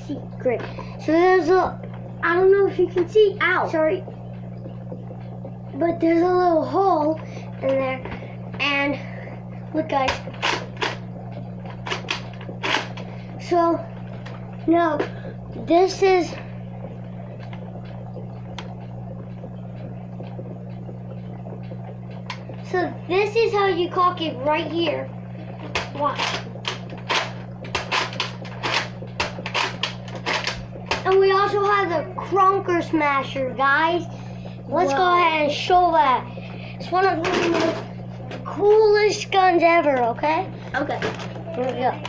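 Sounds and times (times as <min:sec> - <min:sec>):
steady low hum: 0:00.0 - 0:42.0.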